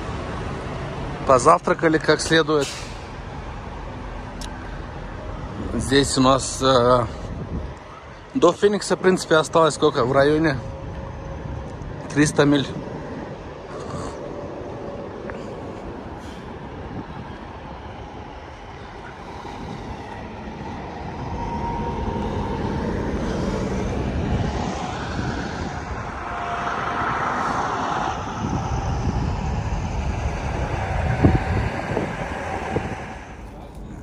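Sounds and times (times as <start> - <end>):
diesel truck engines rumbling: 0.0 - 34.0.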